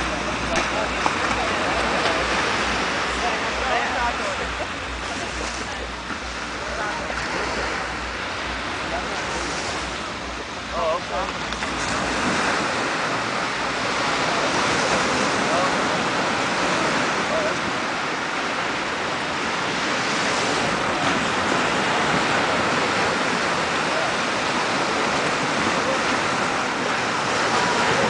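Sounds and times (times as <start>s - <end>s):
faint voices: 0.0s - 28.0s
sea surf washing: 0.0s - 28.0s.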